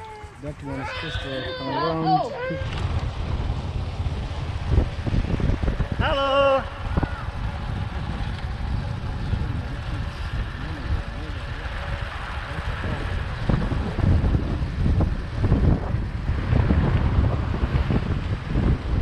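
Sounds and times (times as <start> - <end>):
wind buffeting microphone: 0.0 - 19.0
motorcycle engine running: 2.6 - 19.0.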